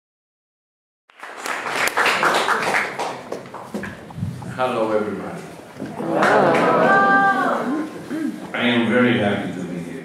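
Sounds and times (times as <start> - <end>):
audience applauding: 1.1 - 3.7, 6.0 - 7.8.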